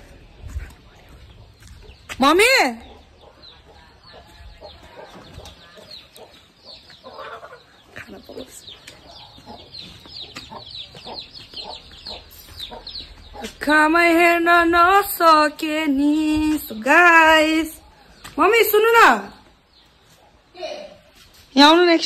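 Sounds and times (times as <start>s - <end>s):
chickens clucking: 0.0s - 13.7s.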